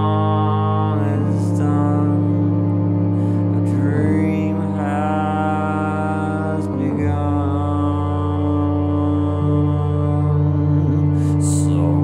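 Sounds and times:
man singing long sliding notes: 0:00.0 - 0:12.0
synth sustained chords: 0:00.0 - 0:12.0.

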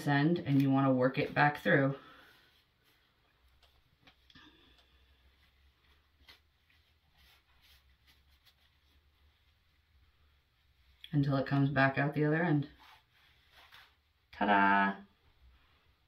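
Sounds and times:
fabric rustling: 0:01.2 - 0:11.0, 0:12.6 - 0:14.7.

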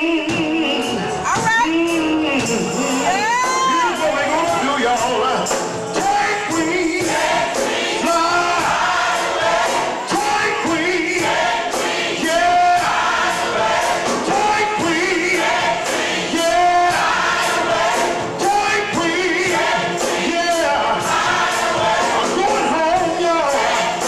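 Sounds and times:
gospel choir singing: 0:00.0 - 0:24.0
instrumental backing with beat: 0:00.0 - 0:24.0.

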